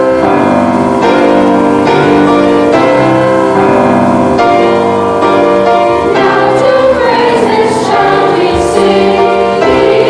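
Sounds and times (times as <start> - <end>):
youth choir singing: 6.0 - 10.0.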